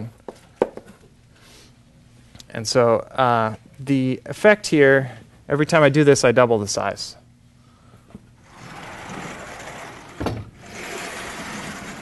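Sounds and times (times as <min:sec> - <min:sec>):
sliding blackboard panels rumbling: 0:08.4 - 0:12.0.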